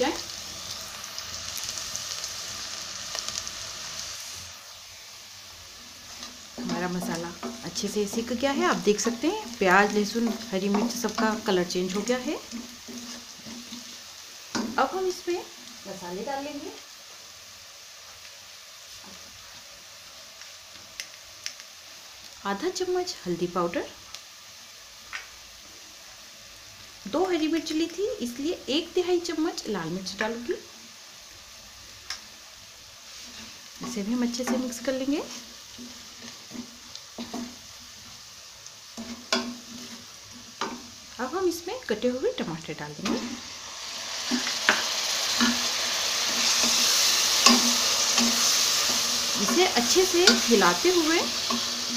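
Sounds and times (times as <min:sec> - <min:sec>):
vegetables sizzling in hot oil: 0:00.0 - 0:51.9
wooden spatula stirring: 0:06.0 - 0:14.0.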